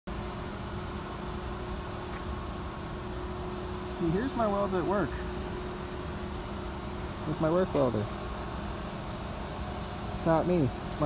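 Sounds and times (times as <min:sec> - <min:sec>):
machine hum with low rumble: 0:00.1 - 0:11.0.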